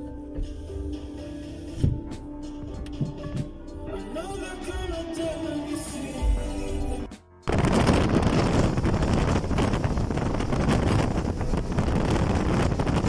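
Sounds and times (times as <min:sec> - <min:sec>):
music: 0:00.0 - 0:13.0
wind and road noise from car: 0:07.5 - 0:13.0
wind buffeting microphone: 0:07.5 - 0:13.0.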